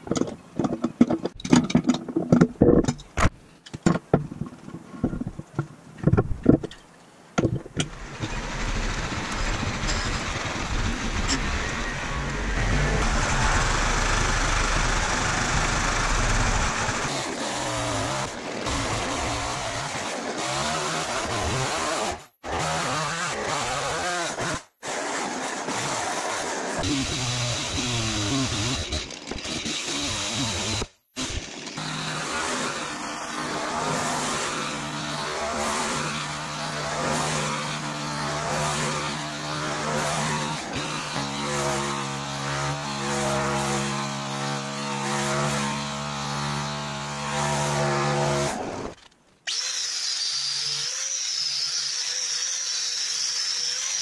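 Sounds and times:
chainsaw cutting wood: 7.8s - 54.0s.

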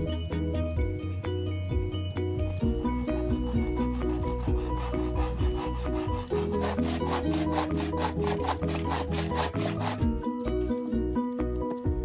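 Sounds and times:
melodic background music: 0.0s - 12.0s
handsaw cutting bamboo: 2.7s - 10.3s.

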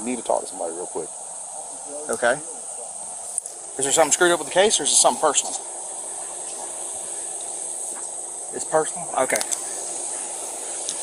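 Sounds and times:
faint hiss: 0.0s - 11.0s
high-pitched insect chorus: 0.0s - 11.0s.

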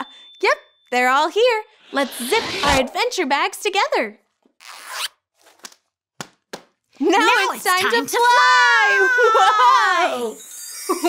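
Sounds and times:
zipper pulled closed: 4.6s - 5.2s.

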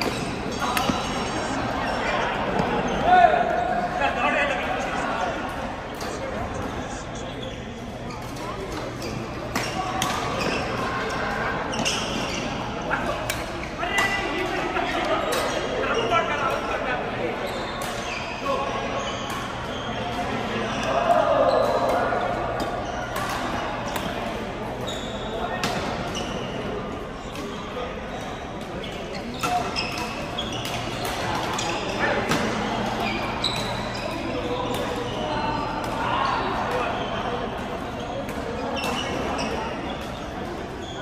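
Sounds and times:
badminton rackets hitting shuttlecocks: 0.0s - 1.2s
players' voices and calls: 0.0s - 41.0s.

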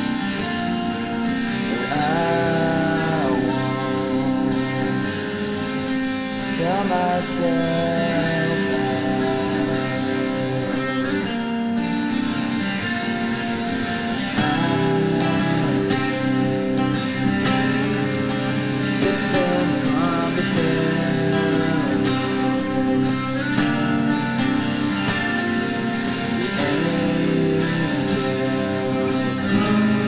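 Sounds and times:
acoustic guitar: 0.0s - 30.0s
electric guitar: 0.0s - 30.0s.

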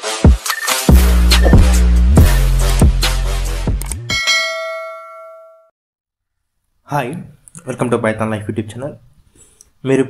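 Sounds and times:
notification bell ding: 4.1s - 5.7s.

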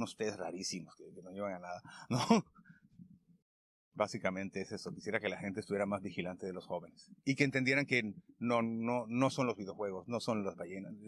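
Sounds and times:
man clearing throat: 2.1s - 2.5s.

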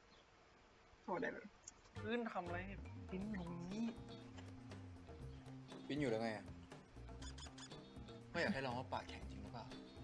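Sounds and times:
soft background music: 1.9s - 10.0s.

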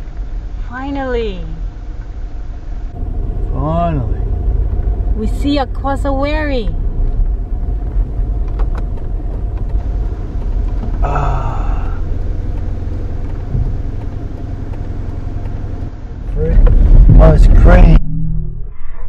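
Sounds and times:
car engine rumble: 0.0s - 18.9s.

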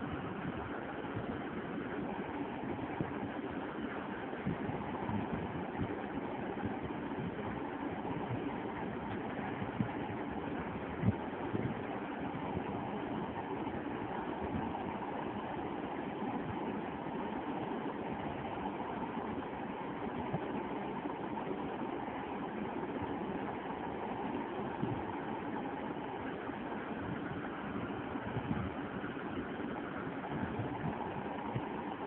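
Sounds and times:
steady background noise: 0.0s - 32.0s.

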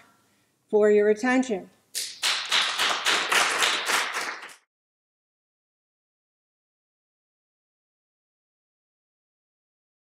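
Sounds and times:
audience applauding: 2.0s - 4.7s.

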